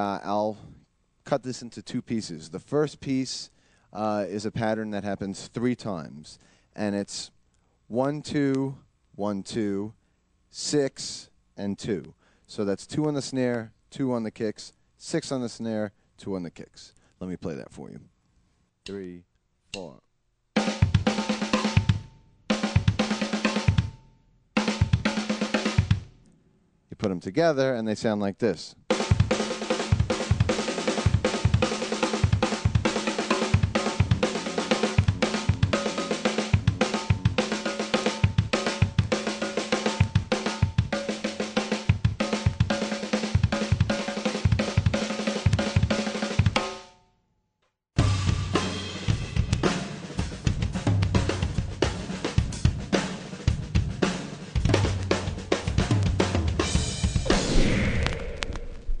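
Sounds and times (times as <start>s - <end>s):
double kick drums: 20.6s - 24.0s, 24.6s - 26.2s, 28.9s - 46.7s, 48.0s - 59.0s
snare drum: 20.6s - 24.0s, 24.6s - 26.1s, 28.9s - 46.8s, 48.0s - 59.0s
cymbals: 28.9s - 46.8s, 48.0s - 58.6s.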